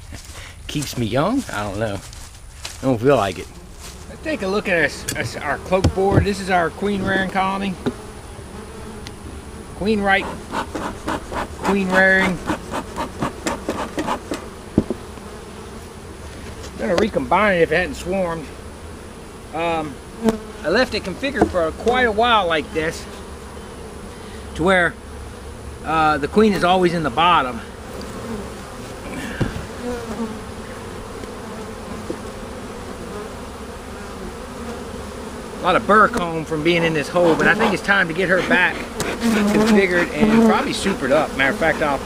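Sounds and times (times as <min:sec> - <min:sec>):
bees buzzing: 0:00.0 - 0:42.0
wooden box knock: 0:12.5 - 0:15.0.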